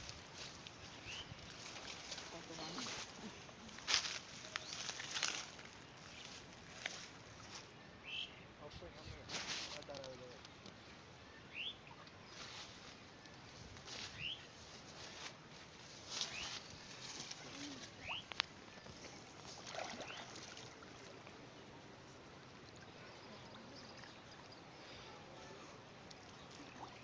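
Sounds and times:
water sloshing and splashing: 0.0s - 3.4s, 16.1s - 21.4s, 26.0s - 27.0s
bird chirping: 7.8s - 8.5s, 10.8s - 13.3s, 13.9s - 14.5s, 16.2s - 19.1s.

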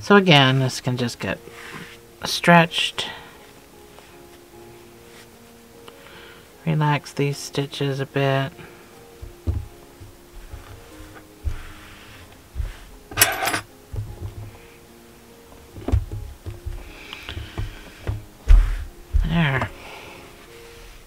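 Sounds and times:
soft background music: 0.0s - 21.0s
fabric rustle: 3.3s - 5.5s, 9.6s - 13.6s, 20.1s - 21.0s
low thumps: 9.2s - 10.8s, 13.9s - 14.6s, 15.7s - 19.8s.

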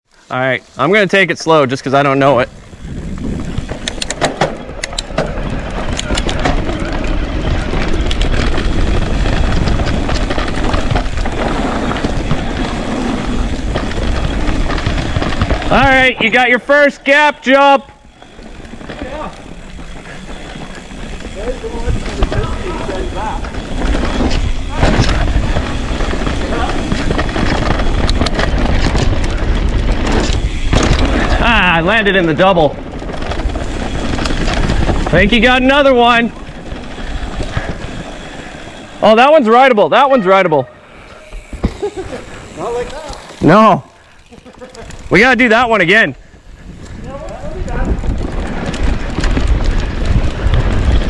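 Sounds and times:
bike rattling: 0.1s - 51.0s
tyres rolling on dirt: 0.3s - 51.0s
wind on microphone: 2.4s - 16.0s, 46.2s - 51.0s.

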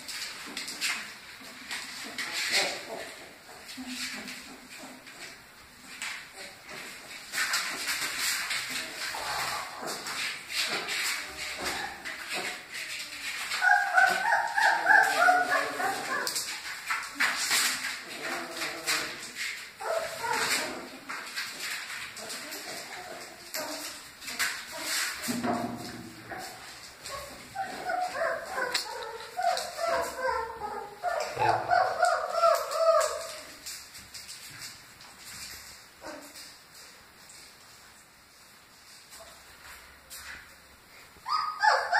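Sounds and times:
puppies whimpering: 13.5s - 16.4s
dog whining: 27.2s - 33.5s.

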